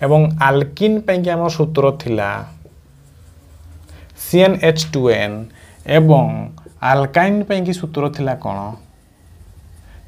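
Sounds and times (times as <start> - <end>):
person speaking: 0.0 - 9.0
marker writing on whiteboard: 1.6 - 8.0.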